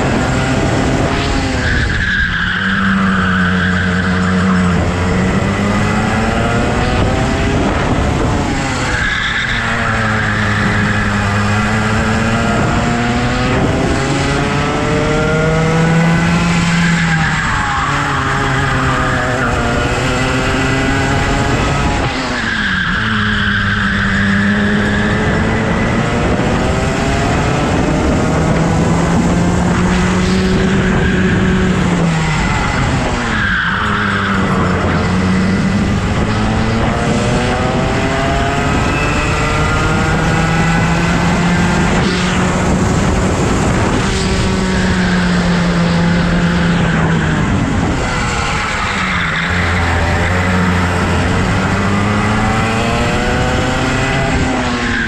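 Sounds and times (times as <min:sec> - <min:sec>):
go-kart engine revving: 0:00.0 - 0:55.0.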